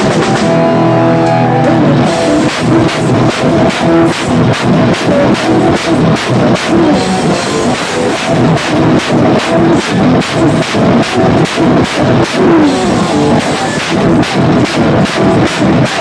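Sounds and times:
drum kit played hard: 0.0s - 16.0s
sustained pitched music: 0.0s - 16.0s.

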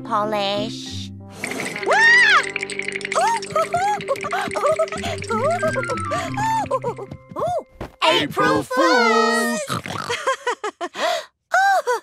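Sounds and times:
cartoon background music: 0.0s - 10.2s.

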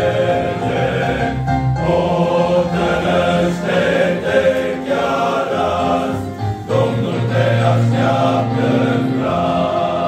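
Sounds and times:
men's choir singing: 0.0s - 10.0s.

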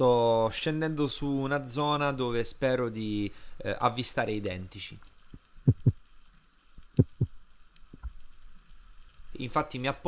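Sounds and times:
muffled low underwater thumps: 5.7s - 6.0s, 7.0s - 7.4s.

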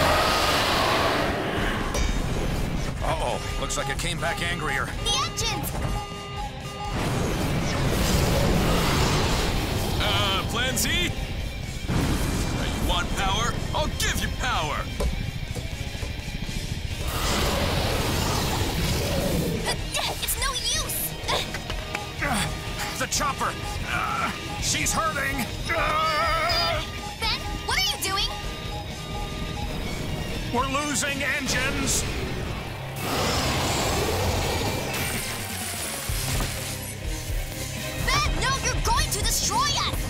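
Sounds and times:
cartoon action music: 0.0s - 15.0s, 16.1s - 40.0s.

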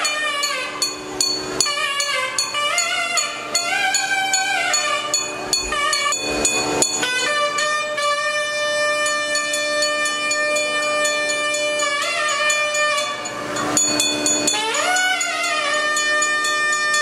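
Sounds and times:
cymbal strokes: 0.0s - 17.0s
double-reed pipe melody: 0.0s - 17.0s
drum strokes: 0.0s - 17.0s
steady drone: 0.0s - 17.0s.

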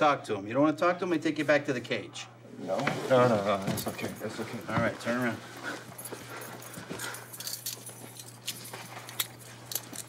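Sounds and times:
low steady hum: 0.0s - 10.0s
handcuffs and keys rattling: 3.7s - 10.0s.

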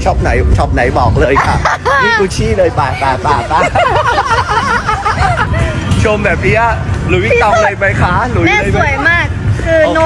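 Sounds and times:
steady low rumble: 0.0s - 10.0s
voices talking: 0.2s - 10.0s
woman laughing: 3.0s - 5.7s.

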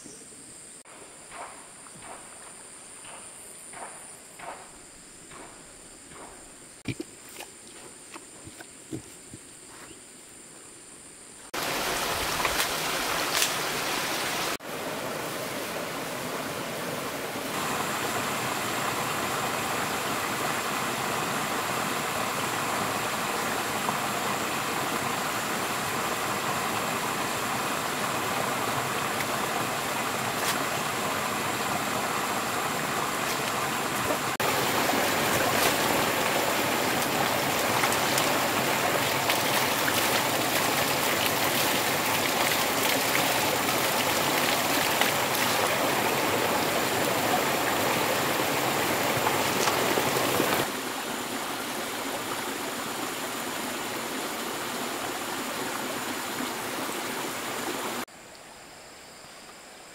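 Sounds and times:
running water rushing: 11.5s - 58.4s.

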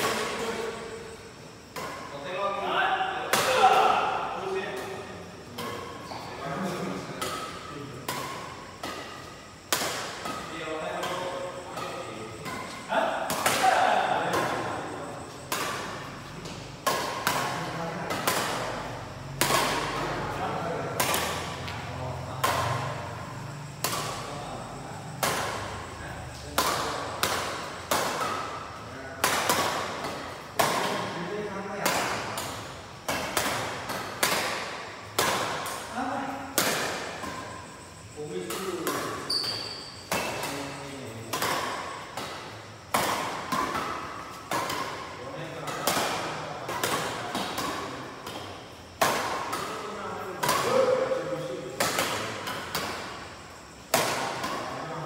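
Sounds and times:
rackets striking shuttlecock: 0.0s - 55.0s.

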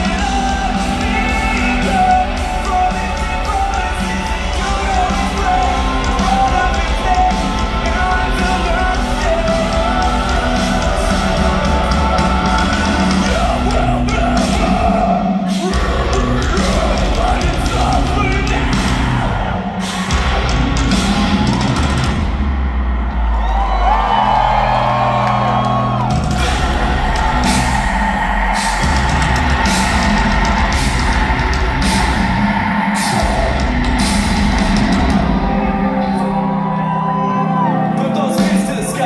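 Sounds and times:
person singing: 0.0s - 21.6s, 26.0s - 39.0s
live rock band playing: 0.0s - 39.0s.

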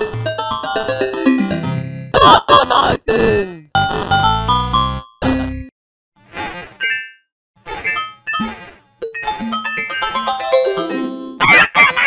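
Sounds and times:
cartoon pitch-bending cries: 11.4s - 12.0s.

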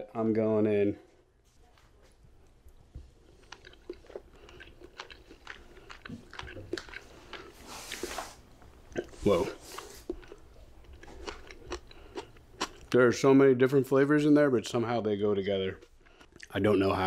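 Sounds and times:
man chewing food: 1.8s - 13.0s, 15.8s - 17.0s.

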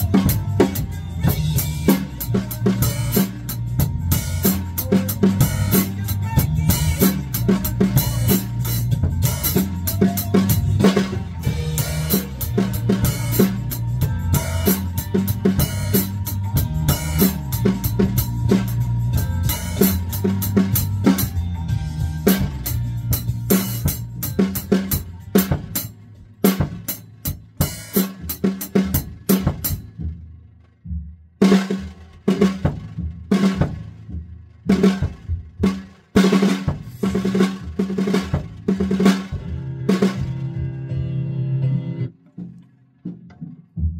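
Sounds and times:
recorded song music: 0.0s - 25.8s
acoustic drum kit playing: 0.0s - 43.9s.

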